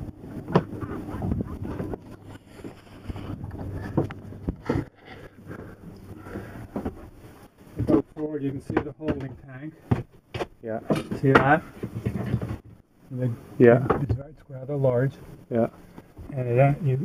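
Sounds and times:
handling bumps and knocks: 7.8s - 12.8s.

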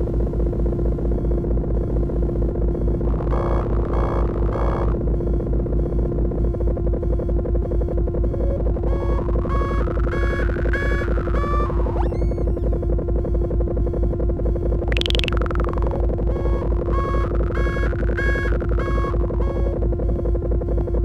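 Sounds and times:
fast low synth pulse: 13.7s - 19.7s
synthesizer drone: 14.8s - 19.5s
rising bleeping tones: 14.9s - 19.4s
short higher synth bursts: 15.0s - 15.6s.

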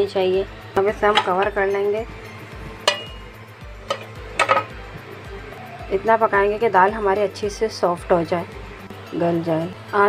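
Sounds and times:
soft background music: 0.0s - 10.0s
pot lid clinking: 1.0s - 1.5s, 2.8s - 4.8s.

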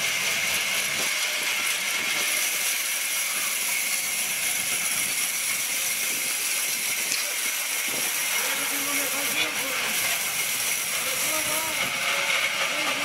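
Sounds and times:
band saw cutting log: 0.0s - 13.0s.

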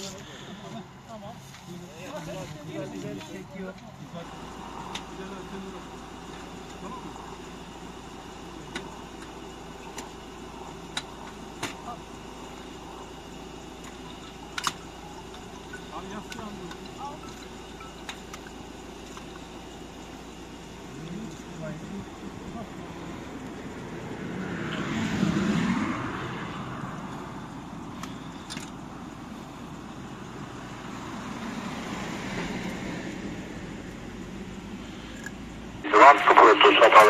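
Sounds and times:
steady traffic hum: 0.0s - 37.0s
vehicle passing: 22.5s - 28.4s, 30.2s - 35.2s.

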